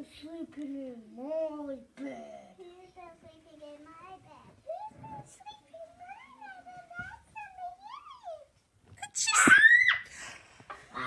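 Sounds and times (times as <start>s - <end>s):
child screaming: 9.3s - 10.0s.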